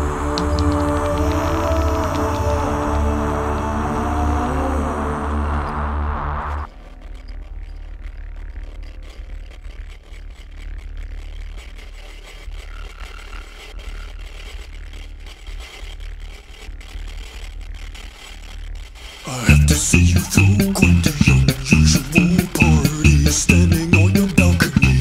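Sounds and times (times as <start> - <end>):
crackling clicks: 0.0 - 3.6, 5.6 - 25.0.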